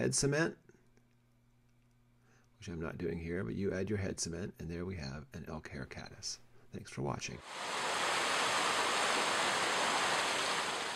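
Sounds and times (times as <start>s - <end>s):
stream water rushing: 7.4s - 10.9s.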